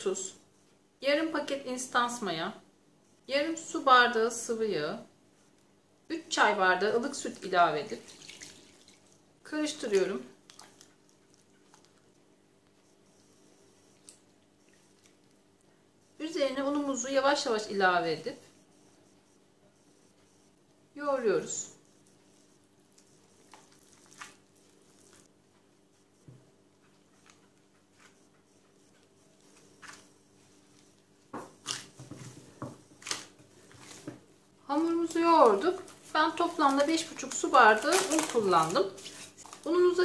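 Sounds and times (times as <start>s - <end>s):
faint steady hum: 0.0s - 40.0s
faint squelching of stirring: 7.2s - 17.2s, 21.6s - 32.9s
dough being kneaded by hand: 21.5s - 40.0s.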